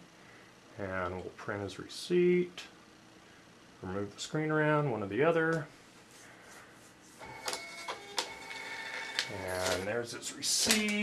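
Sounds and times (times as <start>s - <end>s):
receipt printer whine: 7.2s - 10.1s.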